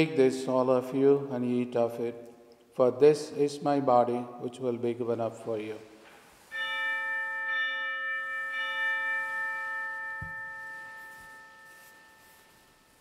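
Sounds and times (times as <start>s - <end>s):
altar bell ringing: 6.5s - 13.0s.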